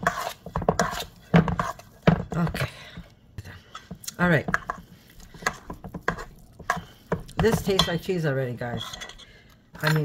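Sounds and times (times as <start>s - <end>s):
hand working dough in bowl: 0.0s - 10.0s.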